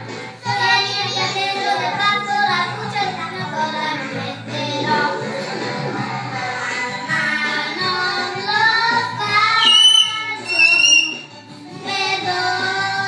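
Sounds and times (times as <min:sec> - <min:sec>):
children singing: 0:00.0 - 0:13.0
karaoke backing track: 0:00.0 - 0:13.0.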